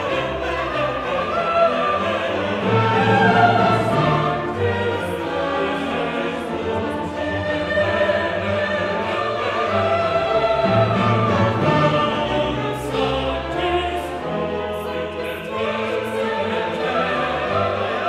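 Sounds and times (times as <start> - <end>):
choir singing: 0.0 - 18.0
orchestral accompaniment: 0.0 - 18.0.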